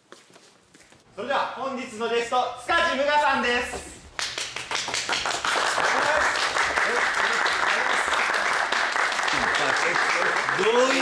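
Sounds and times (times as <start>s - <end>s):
audience applauding: 4.2s - 11.0s.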